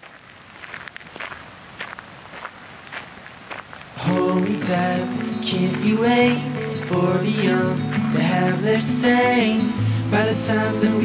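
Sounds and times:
footsteps crunching on gravel: 0.0s - 8.6s.

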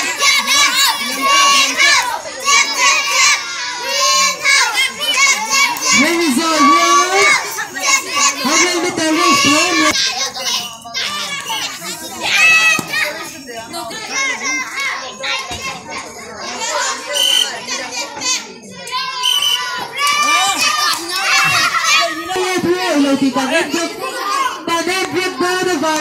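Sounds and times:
children calling out and talking: 0.0s - 26.0s.

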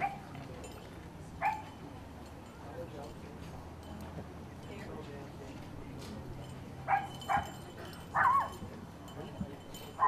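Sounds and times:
dog yipping: 0.0s - 0.2s, 1.4s - 1.6s, 6.9s - 7.5s, 8.2s - 8.5s.

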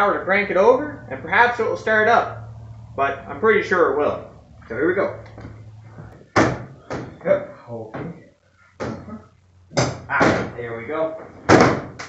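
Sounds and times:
hood clunks and knocks: 5.3s - 7.3s, 11.2s - 12.0s.

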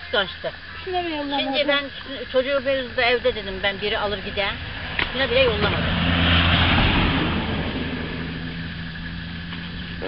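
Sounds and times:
steady low hum: 0.0s - 10.0s
vehicle engine passing by: 3.1s - 10.0s.

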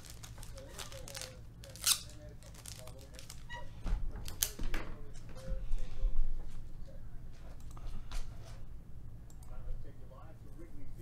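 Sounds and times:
plastic packaging crinkling: 0.0s - 3.5s
low steady hum: 0.0s - 11.0s.

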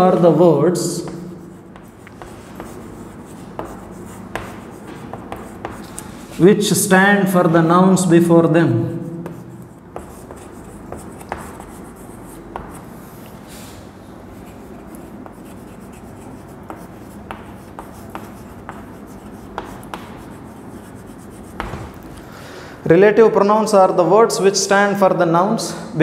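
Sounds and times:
chalk scratching on chalkboard: 0.0s - 6.7s, 8.9s - 13.7s, 14.3s - 22.0s
chalk tapping on board: 0.9s - 6.2s, 9.2s - 12.9s, 14.4s - 22.0s.

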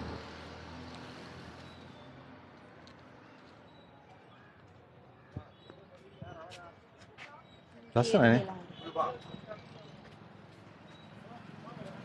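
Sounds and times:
light street noise: 0.0s - 12.0s.

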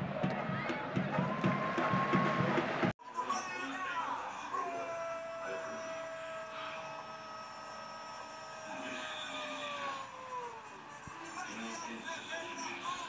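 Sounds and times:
faint stadium crowd noise: 0.0s - 4.9s.

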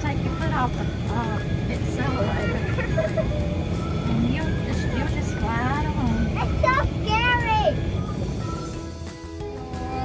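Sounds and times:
golf cart rumbling: 0.0s - 10.0s.

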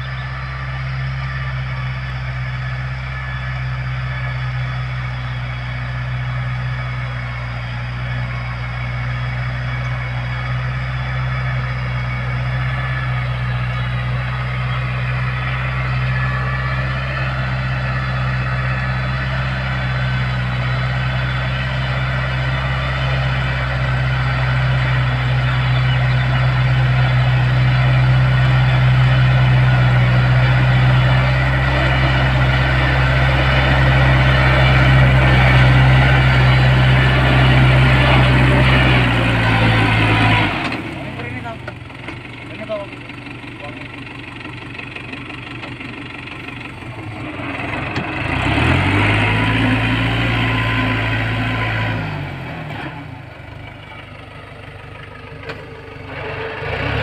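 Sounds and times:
tractor engine under load: 0.0s - 57.0s.

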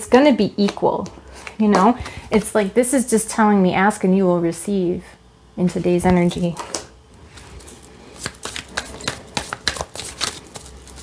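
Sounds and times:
cards slapping and rustling: 7.4s - 11.0s.

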